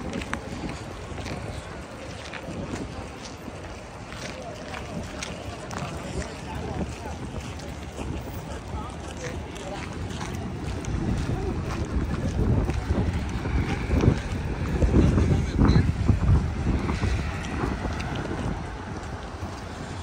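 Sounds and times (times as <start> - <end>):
city street ambience: 0.0 - 20.0
passers-by talking: 0.0 - 20.0
wind buffeting microphone: 0.0 - 20.0.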